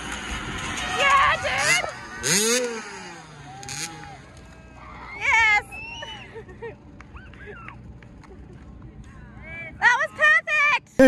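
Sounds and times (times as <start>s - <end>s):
dirt bike engine revving: 0.0s - 4.8s.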